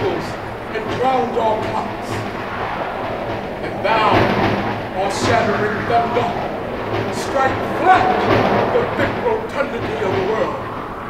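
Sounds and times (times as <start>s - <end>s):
steady low hum: 0.0s - 11.0s
man declaiming: 3.6s - 6.5s, 7.1s - 10.6s.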